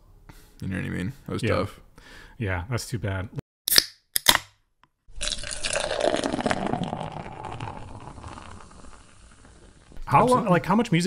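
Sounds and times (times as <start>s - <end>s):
beer pouring into a glass: 5.1s - 10.0s.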